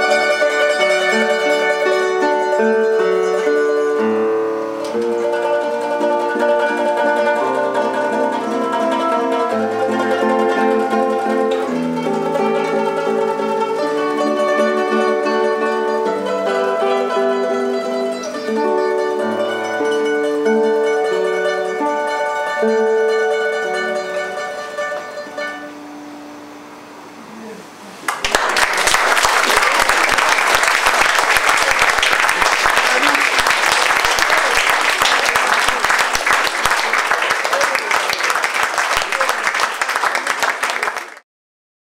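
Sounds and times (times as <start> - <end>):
guitar and mandolin playing: 0.0 - 27.4, 28.4 - 40.1
audience applause: 28.0 - 41.2.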